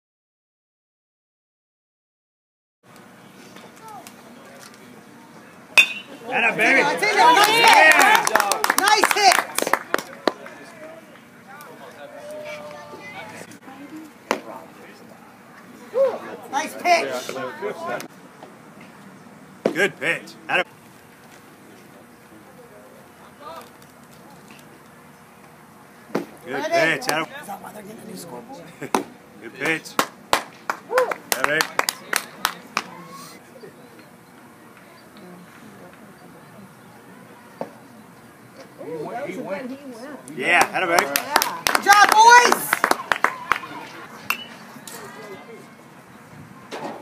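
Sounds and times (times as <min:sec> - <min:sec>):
faint outdoor ambience: 0:02.8 - 0:47.0
metal bat hitting ball: 0:05.8 - 0:06.2.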